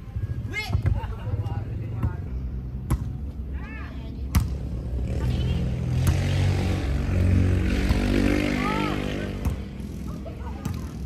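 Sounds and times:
motor vehicle passing by: 4.3s - 11.0s.

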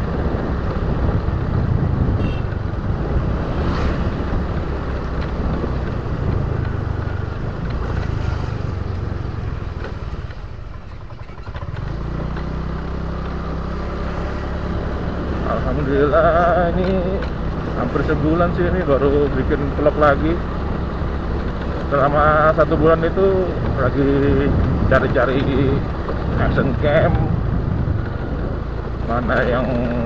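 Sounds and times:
wind noise on microphone: 0.0s - 12.1s, 14.9s - 30.0s
motorbike engine: 0.0s - 30.0s.

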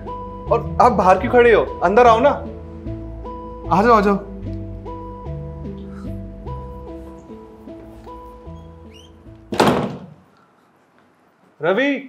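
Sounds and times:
soft background music: 0.0s - 9.9s
wooden door banging shut: 8.9s - 10.2s.

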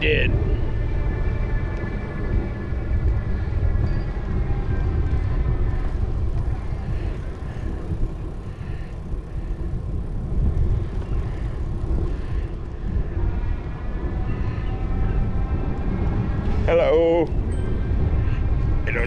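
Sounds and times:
tyre noise on paved path: 0.0s - 19.0s
wind buffeting microphone: 0.0s - 19.0s.

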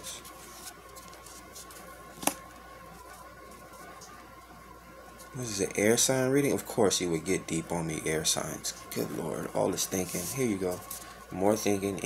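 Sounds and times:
cards rustling and ticking: 0.0s - 4.2s, 8.9s - 11.2s.

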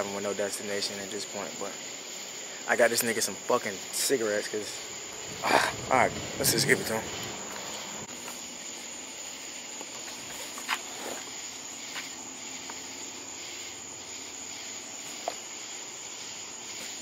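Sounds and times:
crickets trilling: 0.0s - 17.0s.

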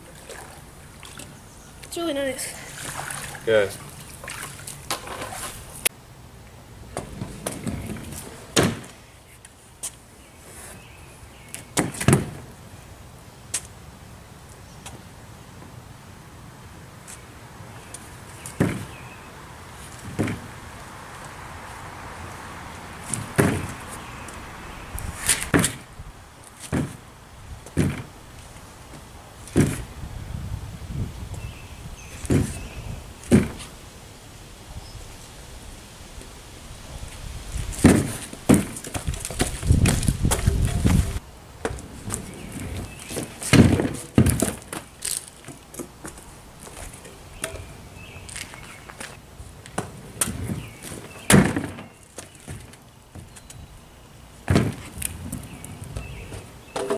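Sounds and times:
kick scooter banging on board: 7.0s - 9.0s, 23.1s - 23.8s, 26.6s - 27.0s, 27.7s - 28.1s, 29.5s - 29.8s, 33.3s - 33.6s, 37.8s - 41.0s, 42.6s - 44.8s, 49.8s - 52.7s, 54.5s - 55.0s, 56.0s - 56.9s
kick scooter clattering on board: 56.0s - 56.9s.

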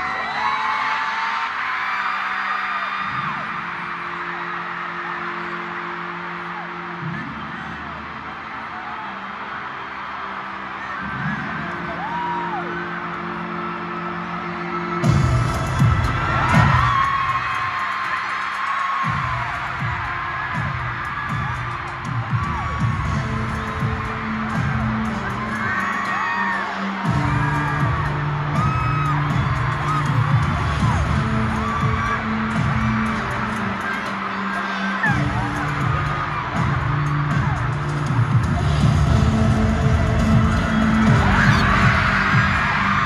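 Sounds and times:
crowd screaming and whooping: 0.0s - 43.0s
soundtrack over loudspeakers: 0.0s - 43.0s
heavy pounding beat: 15.0s - 18.1s, 19.0s - 26.0s, 27.0s - 33.8s, 35.1s - 43.0s.

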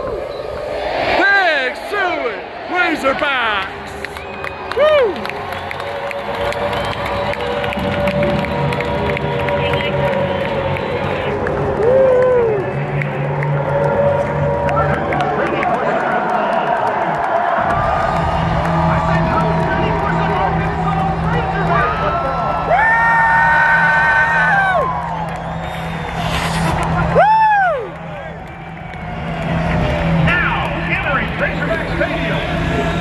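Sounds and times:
fans whooping: 0.0s - 33.0s
stadium crowd cheering: 0.0s - 33.0s.

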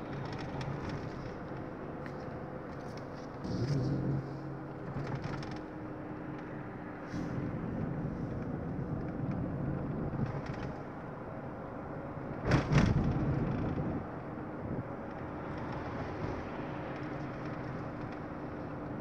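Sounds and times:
car engine and road noise: 0.0s - 19.0s.

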